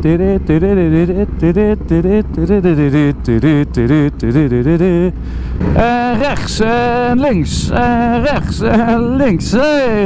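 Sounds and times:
motorcycle engine rumble: 0.0s - 10.0s.

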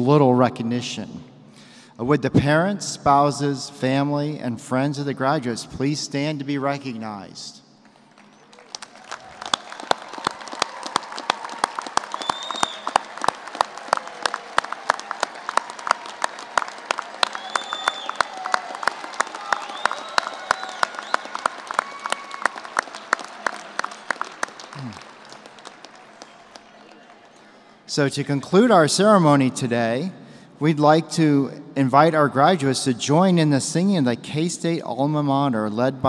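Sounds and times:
crowd applauding: 7.8s - 27.9s.

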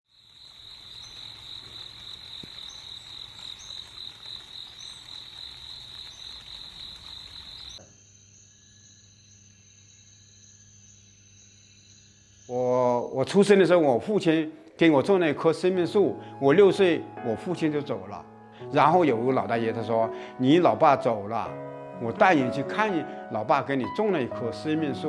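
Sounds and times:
insect chirps: 0.1s - 14.2s
insect trill: 0.1s - 14.3s.

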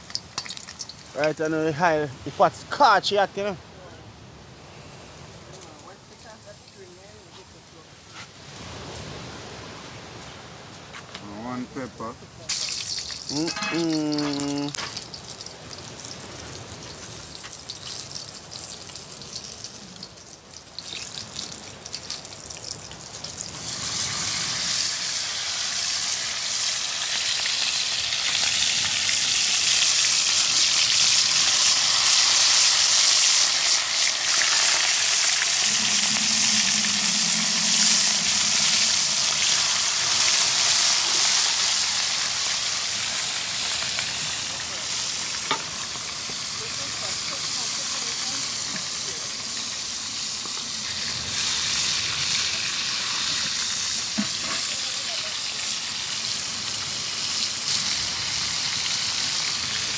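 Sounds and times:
fish sizzling in hot oil: 0.0s - 1.9s, 12.5s - 59.9s.

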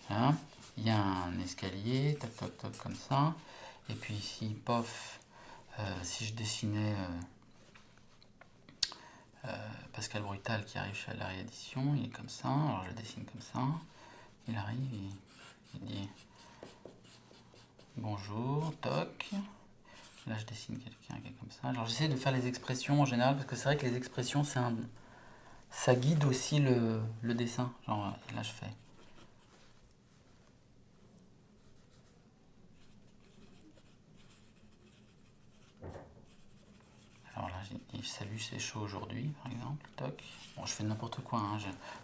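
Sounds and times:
man speaking: 0.0s - 7.3s, 18.0s - 19.6s, 20.2s - 25.0s, 25.7s - 28.9s, 37.2s - 42.0s
felt-tip pen scratching on paper: 14.4s - 18.0s, 32.8s - 37.9s.

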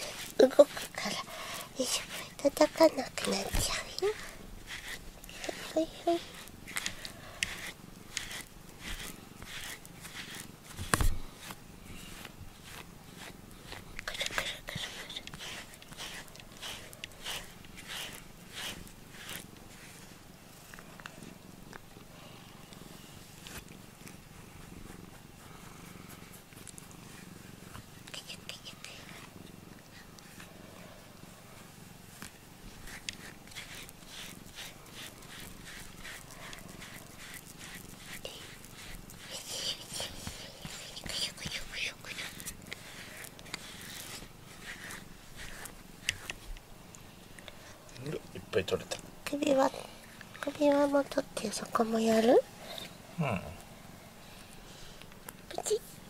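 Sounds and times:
brush rubbing through fur: 0.0s - 56.0s
cat purring: 0.0s - 56.0s
soft voice sounds: 5.4s - 6.3s, 53.1s - 53.7s.

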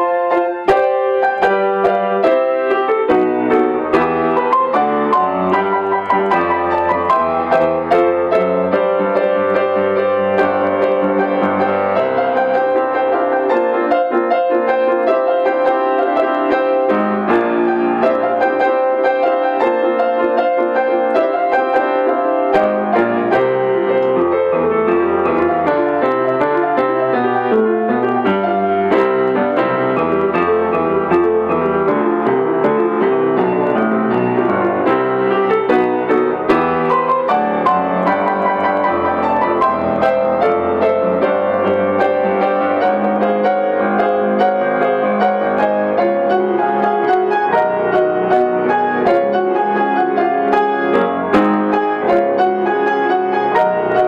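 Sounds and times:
solo grand piano: 0.0s - 54.0s.

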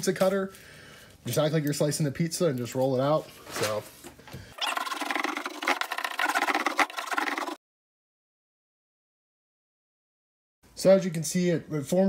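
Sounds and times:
hand roller scraping on mat: 4.6s - 7.6s.

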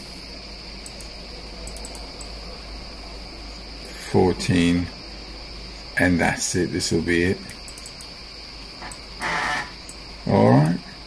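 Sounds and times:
high-pitched whine: 0.0s - 11.0s
faint clicks: 0.8s - 2.4s, 7.4s - 8.2s, 8.8s - 9.1s.

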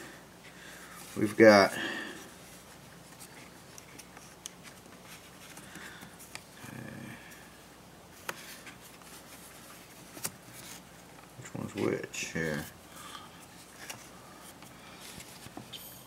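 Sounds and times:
low hum of a person's voice: 0.0s - 3.4s, 5.4s - 8.5s, 11.3s - 15.2s.

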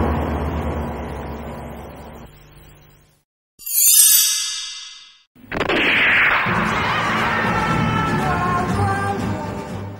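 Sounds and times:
bright metallic chime: 3.6s - 5.3s
music: 6.5s - 9.9s.

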